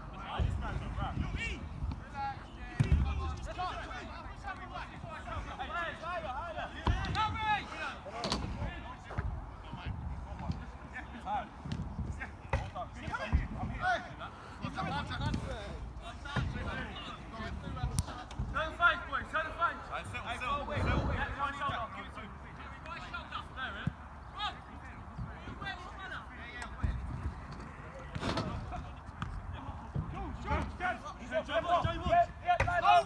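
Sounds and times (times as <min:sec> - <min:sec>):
distant players shouting: 0:10.2 - 0:33.0.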